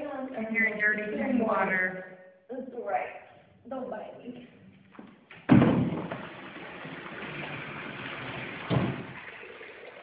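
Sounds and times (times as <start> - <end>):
loud thump: 5.4 - 6.2, 8.7 - 9.2
water running from bathtub tap: 5.8 - 10.0.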